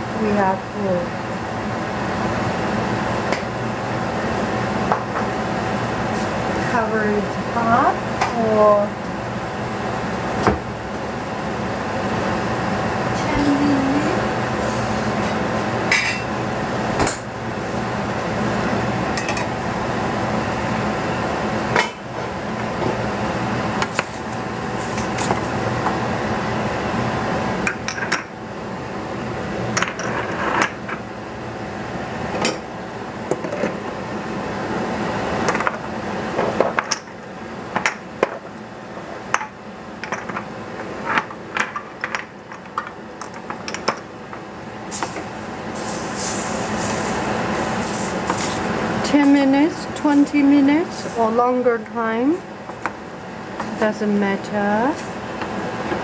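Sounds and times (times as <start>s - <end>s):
stove rushing noise: 0.0s - 56.0s.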